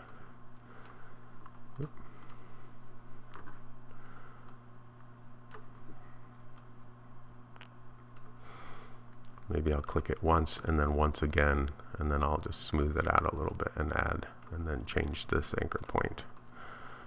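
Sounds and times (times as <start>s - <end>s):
low electrical hum: 0.0s - 17.0s.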